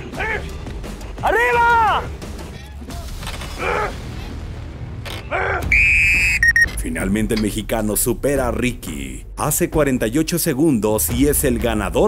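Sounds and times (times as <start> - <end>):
people shouting encouragement: 1.2 - 2.2
short high beeps: 5.8 - 6.8
electronic tone: 6.2 - 6.7.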